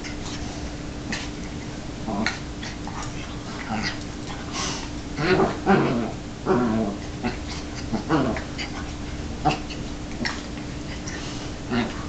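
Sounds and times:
dogs play-wrestling: 0.0 - 12.0.

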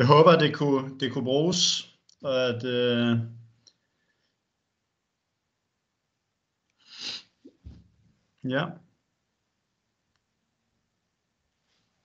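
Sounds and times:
person saying uh: 0.1 - 3.2.

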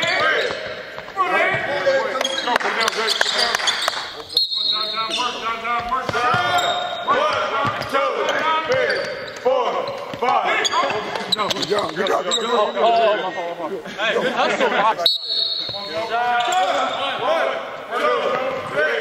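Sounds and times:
sneakers squeaking on hardwood: 0.0 - 12.8, 15.2 - 17.0
basketball dribbling: 5.7 - 12.0.

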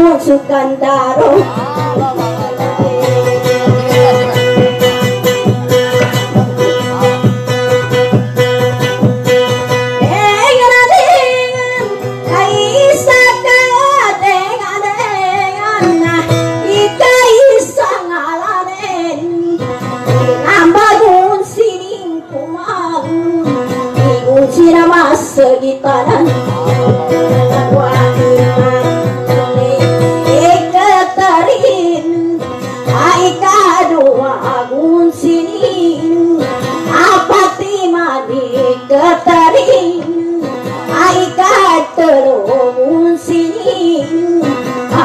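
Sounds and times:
acoustic guitar strumming: 0.0 - 45.0.

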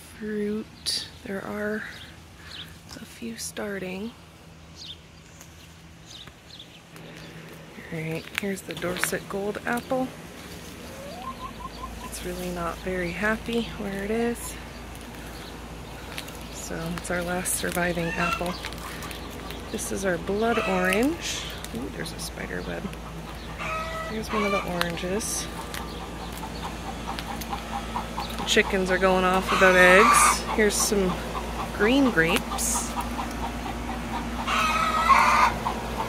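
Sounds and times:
bird calling: 6.1 - 36.0
hens clucking: 7.9 - 36.0.

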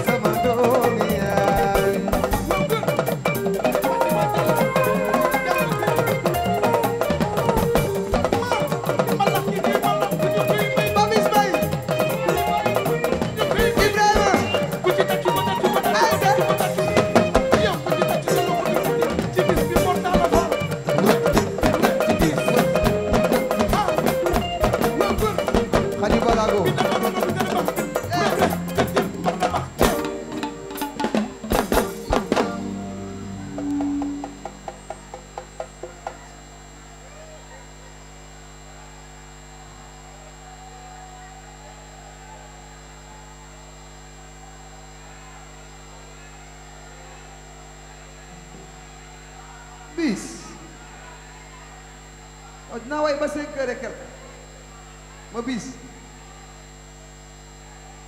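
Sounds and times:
band holding notes: 0.0 - 36.5
electrical hum: 0.0 - 58.0
loud drum strikes: 26.8 - 32.8.

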